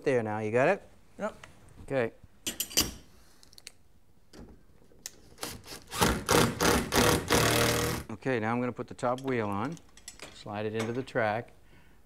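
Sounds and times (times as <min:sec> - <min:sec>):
impact driver driving screws: 0:05.4 - 0:08.1.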